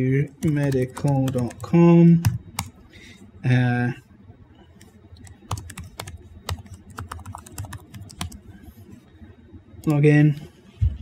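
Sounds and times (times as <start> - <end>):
computer keyboard typing: 0.2 - 2.8, 4.8 - 8.5.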